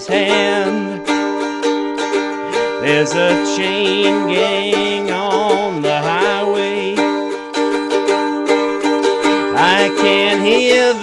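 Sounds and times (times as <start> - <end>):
person singing folk-blues: 0.0 - 11.0
plucked string instrument strumming: 0.0 - 11.0.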